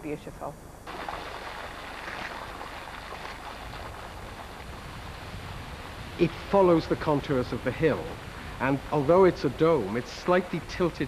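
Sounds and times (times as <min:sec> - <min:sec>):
fountain water splashing: 0:00.9 - 0:11.0.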